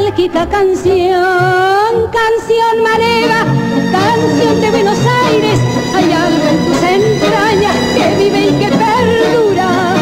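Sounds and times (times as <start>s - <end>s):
tango orchestra playing: 2.9s - 10.0s.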